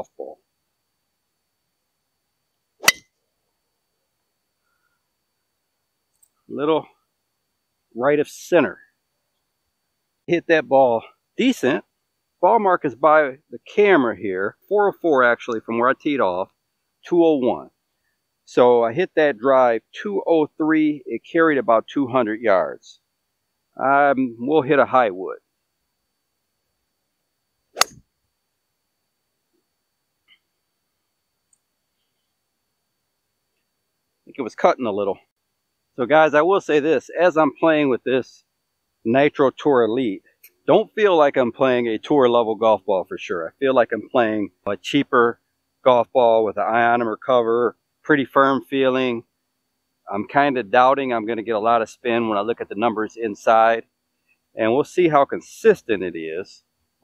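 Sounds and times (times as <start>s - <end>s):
golf ball struck by driver: 2.8s - 3.1s, 27.8s - 28.0s.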